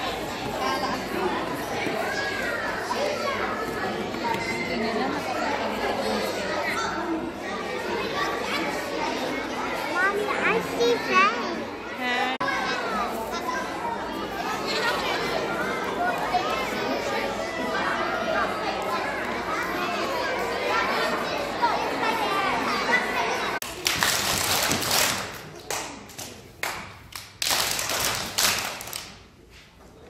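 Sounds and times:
young children chattering: 0.0s - 23.8s.

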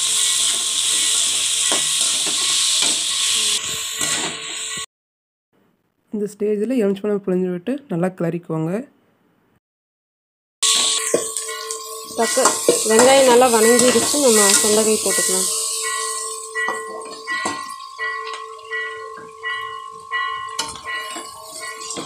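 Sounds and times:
onions sizzling in oil: 0.0s - 4.9s, 10.6s - 19.4s, 20.0s - 22.0s
metal ladle scraping a pan: 10.7s - 17.8s, 20.2s - 22.0s.

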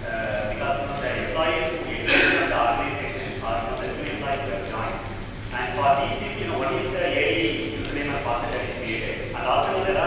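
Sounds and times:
man talking over a microphone: 0.0s - 10.0s.

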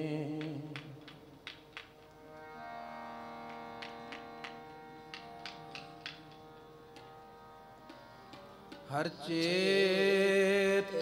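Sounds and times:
harmonium chord: 2.0s - 11.0s.

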